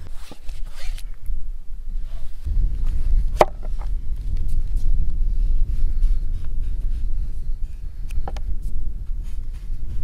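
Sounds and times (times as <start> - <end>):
rasping rustle: 0.0 - 1.2
wind buffeting microphone: 0.8 - 10.0.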